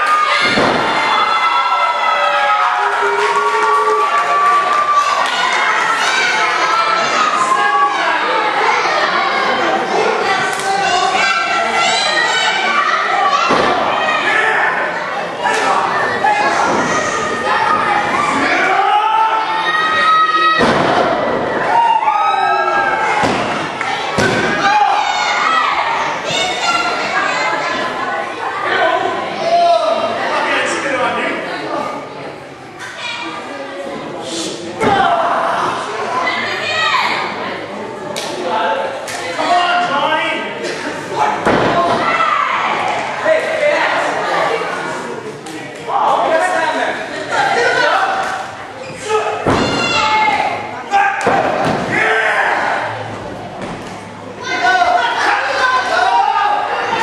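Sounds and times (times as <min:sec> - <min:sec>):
crowd shouting: 0:00.0 - 0:30.7, 0:39.4 - 0:45.0, 0:45.9 - 0:53.1, 0:54.0 - 0:57.0.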